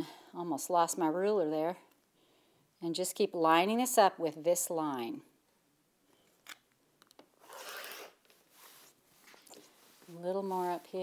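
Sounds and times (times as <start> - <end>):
rotary cutter slicing fabric: 7.4 - 8.2.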